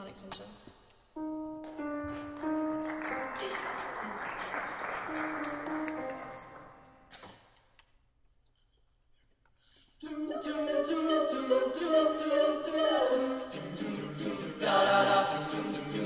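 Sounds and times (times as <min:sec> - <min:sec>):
piano single notes: 0:01.2 - 0:07.2.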